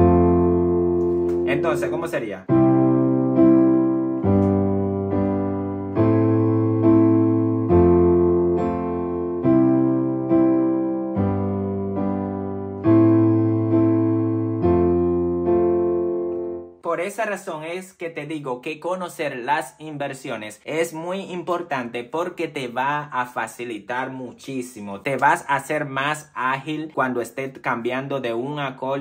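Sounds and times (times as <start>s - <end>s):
piano chords: 0.0s - 17.4s.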